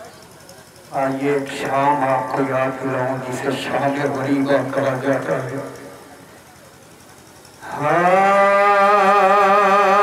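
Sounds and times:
man singing a long held note: 7.6s - 10.0s.

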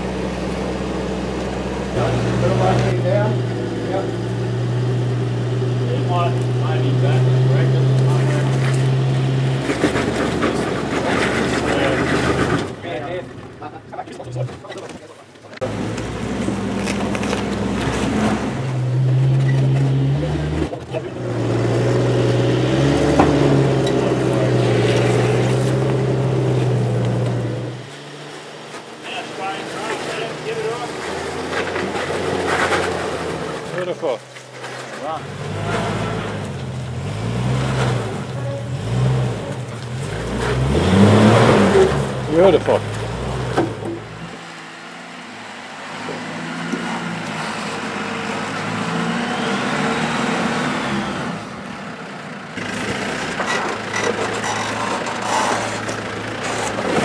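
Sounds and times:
car engine pulling at low revs: 0.0s - 57.0s.

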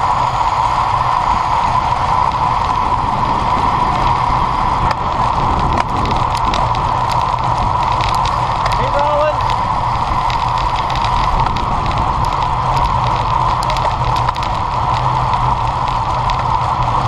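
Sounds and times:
bicycle tyre and road noise: 0.0s - 17.0s
wind rushing over microphone: 0.0s - 17.0s.

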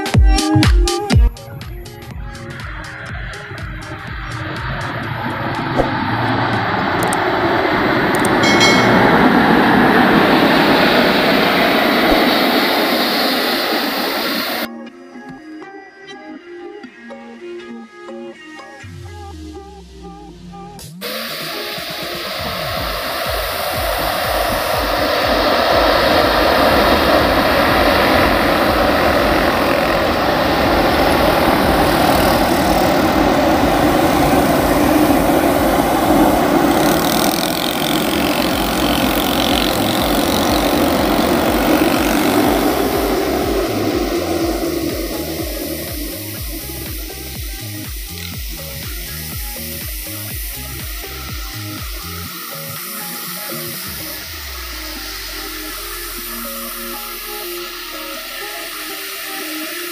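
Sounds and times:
jet engines rumbling: 1.3s - 14.7s, 21.0s - 52.9s.

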